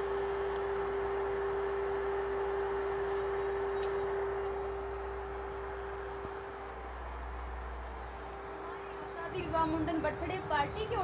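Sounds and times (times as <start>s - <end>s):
low-mid tone drone: 0.0s - 11.0s.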